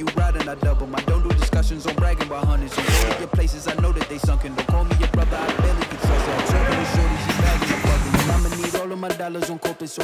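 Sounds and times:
hip-hop music: 0:00.0 - 0:10.0.

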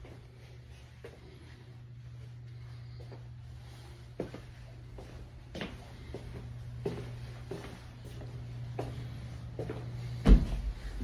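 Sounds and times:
steady low hum: 0:00.0 - 0:11.0
footsteps on carpeted stairs: 0:03.0 - 0:11.0.

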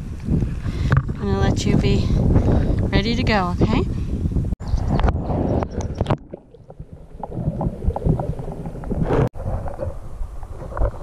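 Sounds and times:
water sloshing underwater: 0:04.6 - 0:11.0.

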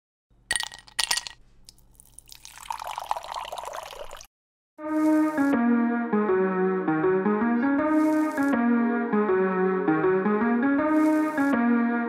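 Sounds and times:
seltzer fizzing in a glass: 0:00.6 - 0:04.3.

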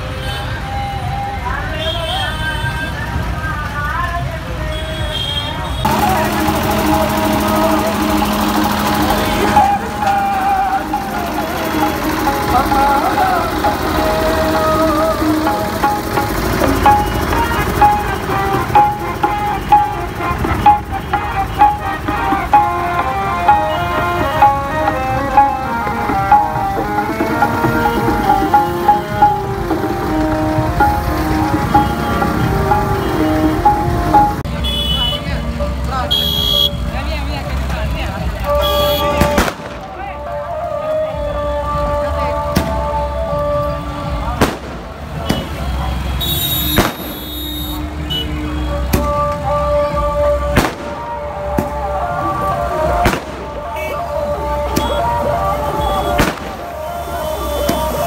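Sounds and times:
devotional music with singing: 0:05.8 - 0:34.5, 0:37.2 - 0:46.2, 0:47.8 - 0:58.0.

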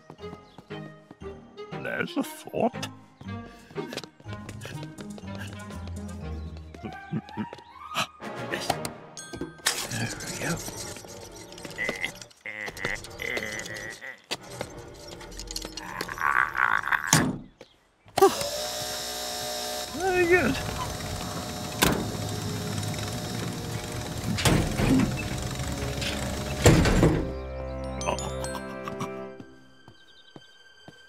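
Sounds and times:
cartoon music: 0:06.8 - 0:08.8, 0:27.3 - 0:29.6.

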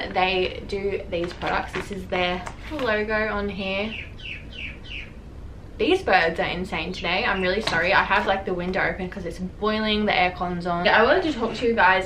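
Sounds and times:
birds chirping: 0:01.4 - 0:05.3, 0:06.9 - 0:08.6.

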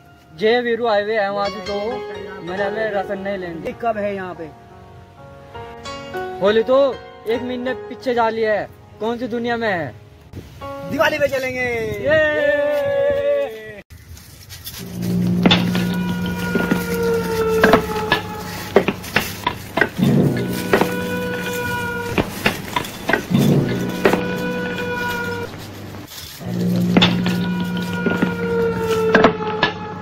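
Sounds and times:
long held music notes: 0:00.0 - 0:13.1, 0:14.8 - 0:30.0
man shouting high-pitched: 0:11.0 - 0:13.8
steady low hum: 0:14.8 - 0:28.8.

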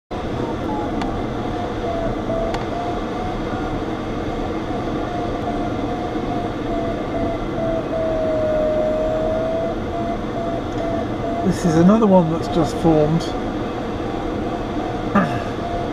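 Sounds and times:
airflow rushing in cockpit: 0:00.1 - 0:15.9
variometer beeps: 0:00.4 - 0:03.9, 0:04.5 - 0:15.9.

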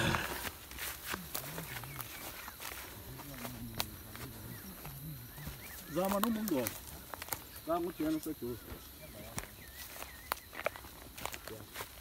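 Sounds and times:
indistinct vocal sounds: 0:00.0 - 0:00.5
footsteps through dry grass: 0:00.0 - 0:12.0
twigs crackling underfoot: 0:00.0 - 0:12.0.

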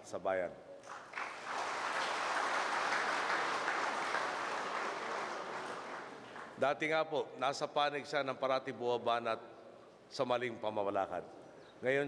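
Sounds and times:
audience applauding: 0:00.8 - 0:06.6.

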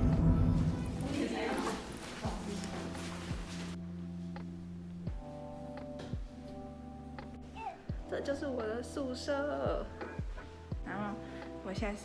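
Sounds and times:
footsteps on hard floor: 0:00.1 - 0:03.8
people talking: 0:01.0 - 0:02.9.

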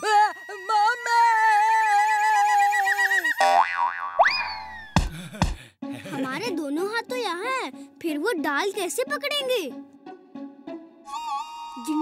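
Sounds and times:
rising and falling whistle: 0:11.1 - 0:12.0.

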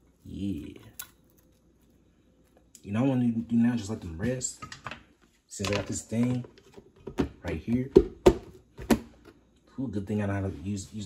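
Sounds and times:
man speaking: 0:00.2 - 0:01.0, 0:09.7 - 0:11.0.

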